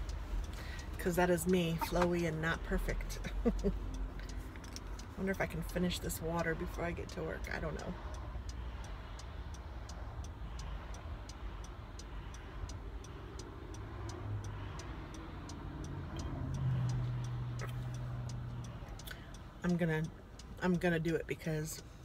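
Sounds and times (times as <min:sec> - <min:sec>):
car cabin rumble: 0:00.0 - 0:03.8
low engine hum: 0:00.0 - 0:22.0
turn signal ticking: 0:00.0 - 0:22.0.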